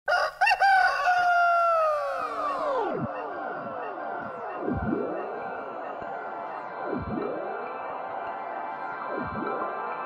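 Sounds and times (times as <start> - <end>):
rooster crowing: 0.1 - 2.9.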